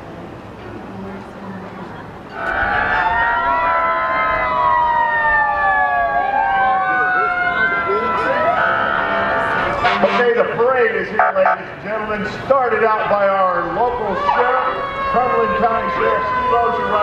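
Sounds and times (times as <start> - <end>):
police sirens wailing: 2.3 - 17.0.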